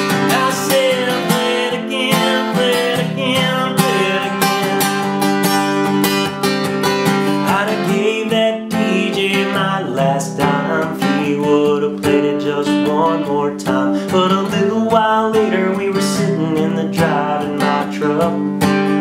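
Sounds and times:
acoustic guitar strumming: 0.0 - 19.0
man singing: 0.0 - 19.0.

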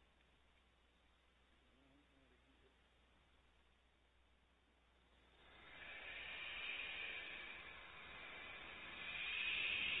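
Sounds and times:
owlets rasping hiss: 5.0 - 10.0.

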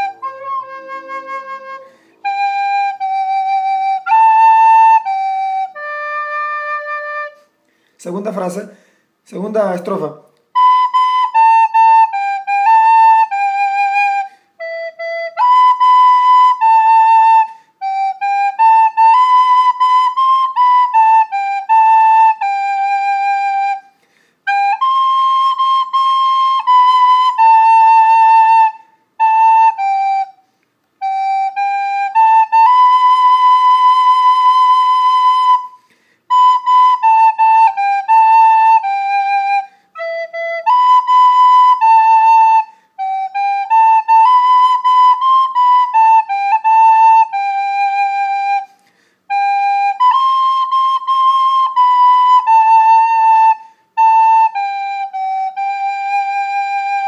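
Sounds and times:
soprano recorder melody: 0.0 - 7.7, 10.4 - 57.0.

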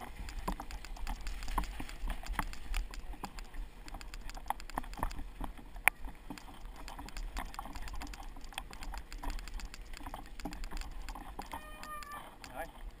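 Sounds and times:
bike clicks and rattles: 0.0 - 13.0.

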